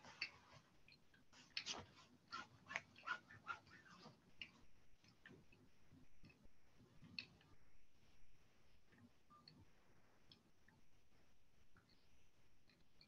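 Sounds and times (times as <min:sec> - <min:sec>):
faint irregular clicks and taps: 0:00.0 - 0:13.0.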